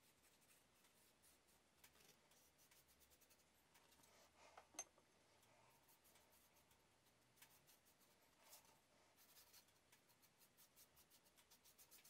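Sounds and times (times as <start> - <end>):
paintbrush scratching on board: 0.0 - 4.4, 5.7 - 12.0.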